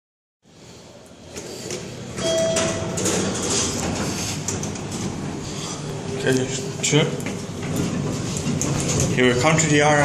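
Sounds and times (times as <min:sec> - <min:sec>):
elevator doors sliding open: 0:01.2 - 0:10.0
elevator arrival chime: 0:02.2 - 0:03.0.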